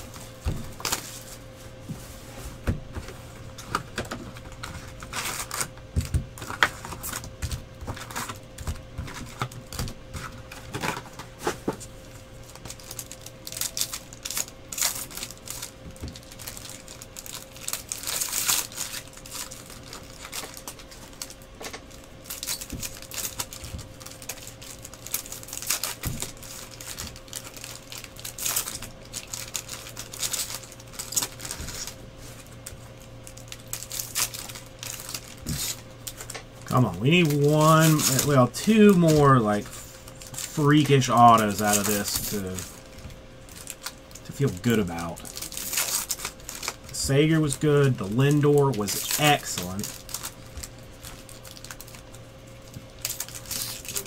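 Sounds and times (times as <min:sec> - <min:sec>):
pack wrappers crinkling: 0:00.0 - 0:01.4, 0:03.5 - 0:54.0
faint steady hum: 0:00.0 - 0:54.0.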